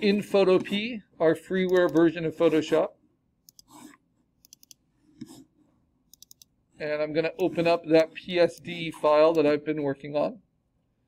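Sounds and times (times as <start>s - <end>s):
computer mouse clicks: 1.6s - 2.1s, 3.4s - 5.4s, 6.1s - 6.6s.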